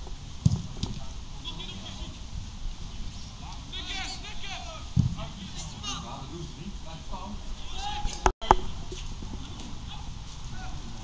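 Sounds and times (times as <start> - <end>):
distant players shouting: 3.0 - 6.3, 7.4 - 11.0.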